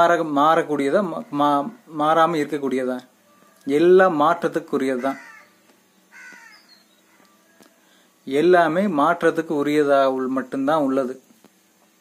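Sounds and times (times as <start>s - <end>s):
crow cawing: 4.9s - 8.0s.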